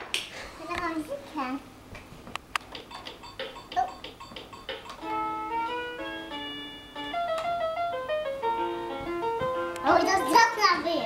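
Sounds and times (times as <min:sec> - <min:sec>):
electronic keyboard melody: 0:03.0 - 0:11.0.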